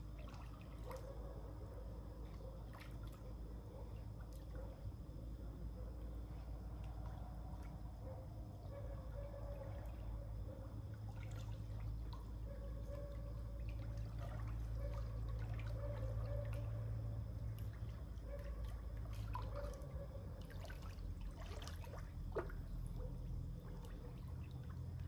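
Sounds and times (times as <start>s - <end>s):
water splashing and dripping: 0.0s - 1.3s, 2.1s - 4.8s, 10.9s - 25.0s
steady low hum: 0.0s - 25.0s.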